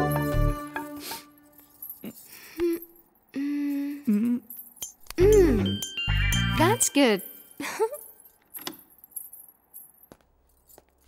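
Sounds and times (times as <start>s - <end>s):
faint metallic jingling and clicks: 1.4s - 11.0s.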